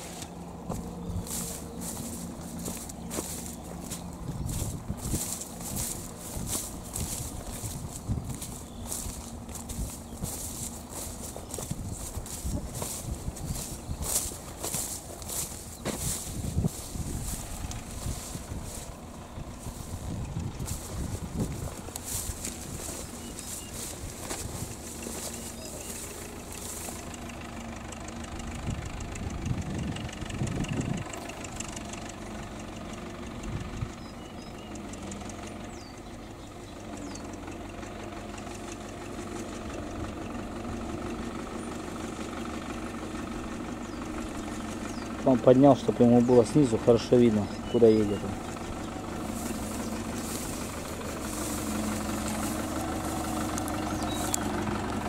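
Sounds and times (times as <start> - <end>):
footsteps through tall grass: 0.0 - 27.5, 38.3 - 55.0
tractor engine running: 0.0 - 55.0.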